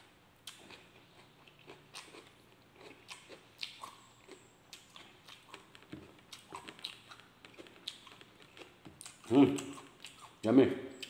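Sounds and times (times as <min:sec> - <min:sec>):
wet mouth eating clicks: 0:03.1 - 0:10.4.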